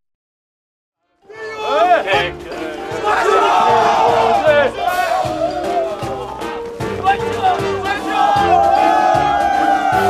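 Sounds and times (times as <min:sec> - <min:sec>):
soldiers yelling battle cry: 0:01.3 - 0:10.0.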